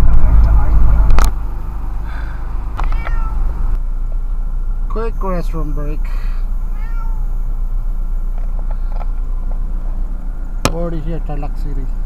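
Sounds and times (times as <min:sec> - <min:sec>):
car engine hum inside cabin: 0:00.0 - 0:12.0.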